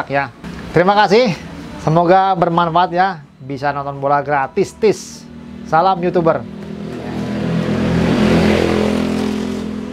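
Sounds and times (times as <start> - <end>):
vehicle engine passing by: 4.9 - 9.9.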